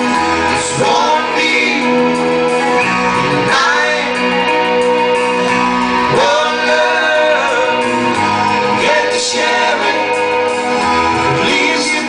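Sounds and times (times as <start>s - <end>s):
man singing: 0.0s - 5.0s, 6.0s - 12.0s
drums: 0.0s - 12.0s
guitar: 0.0s - 12.0s
keyboard: 0.0s - 12.0s.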